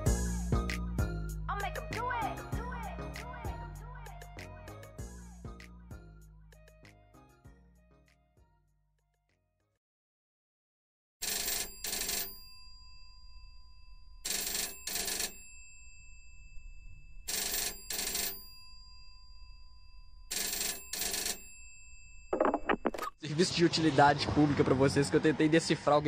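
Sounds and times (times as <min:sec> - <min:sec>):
telephone double ring: 0:11.2 - 0:12.7, 0:14.2 - 0:15.8, 0:17.2 - 0:18.9, 0:20.3 - 0:23.0.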